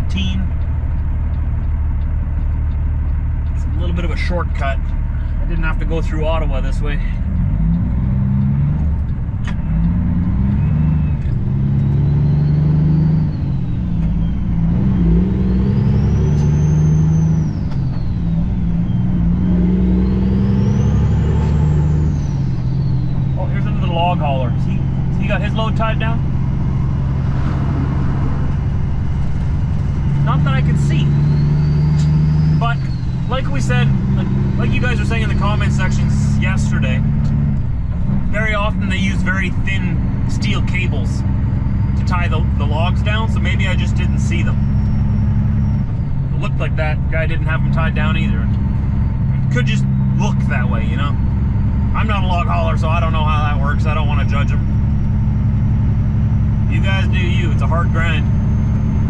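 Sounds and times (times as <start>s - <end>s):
diesel truck engine shifting gears: 0.0s - 59.0s
high turbo whistle: 10.4s - 36.2s.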